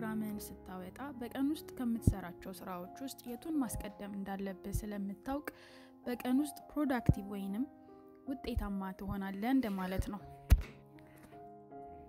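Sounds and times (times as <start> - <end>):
soft background music: 0.0 - 12.0
sharp thunk: 10.5 - 10.8.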